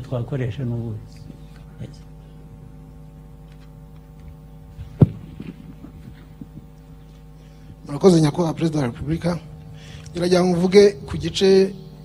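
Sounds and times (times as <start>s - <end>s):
man speaking: 0.0s - 2.1s, 10.1s - 11.8s
steady electrical hum: 0.0s - 12.0s.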